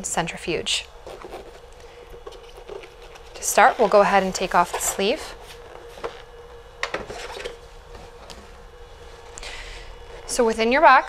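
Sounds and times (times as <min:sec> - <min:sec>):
cardboard rubbing: 0:01.0 - 0:06.1.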